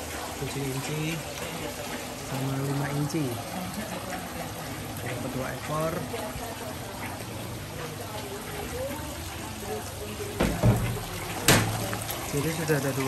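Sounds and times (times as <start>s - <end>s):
water trickling and sloshing: 0.0s - 13.0s.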